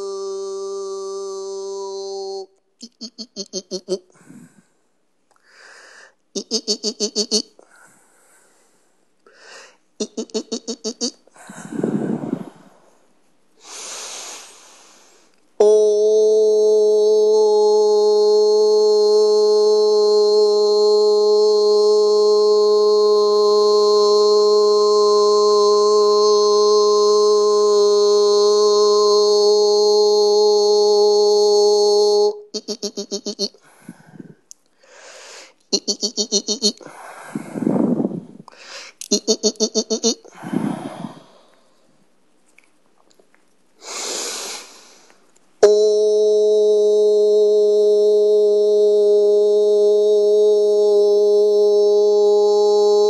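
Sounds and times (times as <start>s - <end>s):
held overtone vocal tone: 0.0s - 4.6s, 6.4s - 7.6s, 10.0s - 12.7s, 15.6s - 34.4s, 35.6s - 36.9s, 37.5s - 41.4s, 45.6s - 53.0s
person's voice trilling: 0.0s - 4.6s, 6.4s - 7.6s, 10.0s - 12.7s, 15.6s - 34.4s, 35.6s - 38.4s, 39.0s - 41.3s, 45.6s - 53.0s
breaths: 4.1s - 6.2s, 7.6s - 9.9s, 11.3s - 15.4s, 33.6s - 35.6s, 36.8s - 39.1s, 40.3s - 42.0s, 43.8s - 45.3s.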